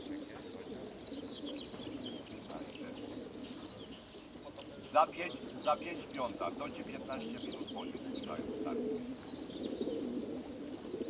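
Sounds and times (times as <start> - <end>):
pigeons cooing: 0.0 - 11.0
songbirds chirping: 0.0 - 11.0.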